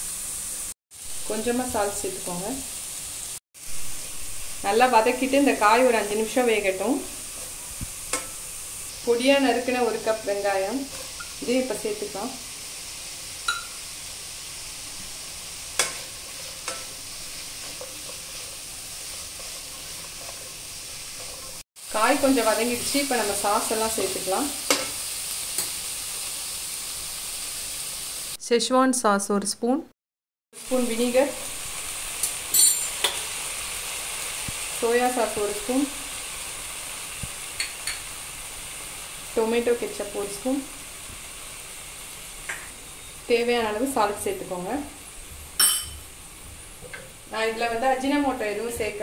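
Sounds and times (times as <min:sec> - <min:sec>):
vegetables sizzling in oil: 0:00.0 - 0:28.4, 0:30.6 - 0:49.0.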